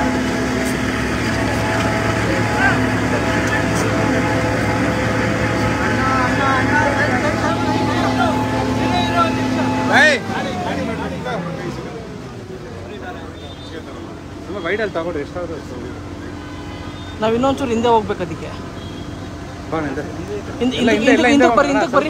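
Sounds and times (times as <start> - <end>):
crowd talking: 0.0 - 22.0
engine idling: 0.0 - 22.0.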